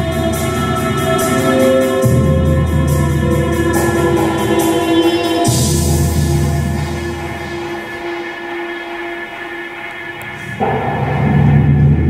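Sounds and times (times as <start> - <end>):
sustained chord of held tones: 0.0 - 10.7.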